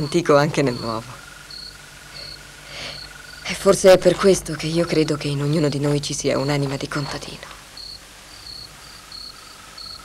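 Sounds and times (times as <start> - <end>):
crickets chirping in high trills: 0.0 - 10.0
lower steady pulsing trill: 0.0 - 10.0.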